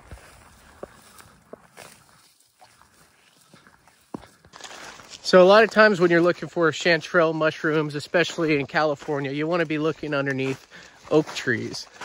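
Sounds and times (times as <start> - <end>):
footsteps through dry grass: 0.0 - 12.0.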